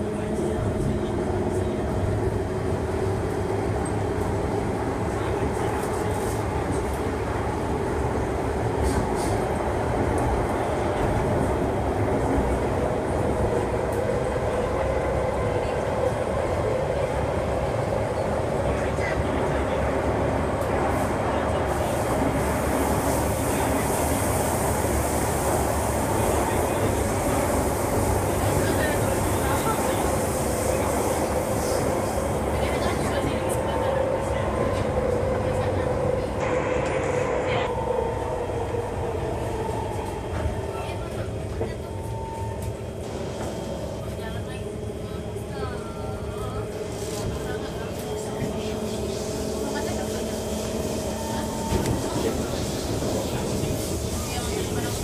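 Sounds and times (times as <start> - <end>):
train running inside carriage: 0.0 - 55.0.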